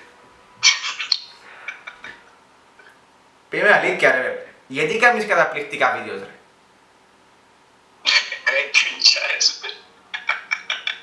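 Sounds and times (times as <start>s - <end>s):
high-pitched squeaky laughter: 0.6s - 2.2s, 8.1s - 9.0s, 9.6s - 11.0s.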